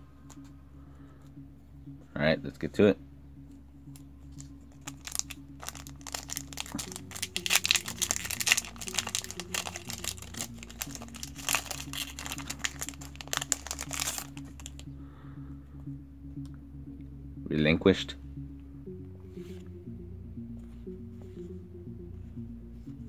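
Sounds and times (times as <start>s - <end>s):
background music: 0.0s - 23.0s
foil wrapper crinkling: 4.8s - 14.8s.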